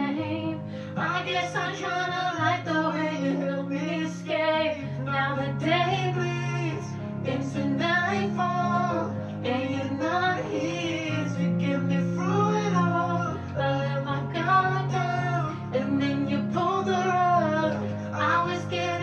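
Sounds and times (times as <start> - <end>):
song with sung melody: 0.0 - 19.0
sustained bass notes: 0.0 - 19.0.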